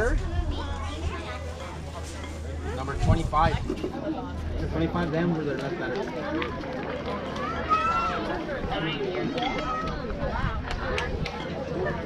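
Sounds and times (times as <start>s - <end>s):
children and adults talking: 0.0s - 12.0s.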